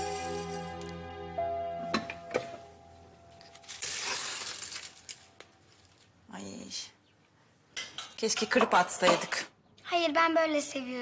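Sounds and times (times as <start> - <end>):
background music: 0.0 - 5.1.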